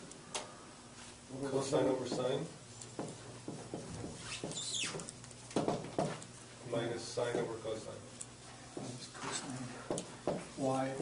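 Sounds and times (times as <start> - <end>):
marker squeaking on whiteboard: 4.1 - 5.1.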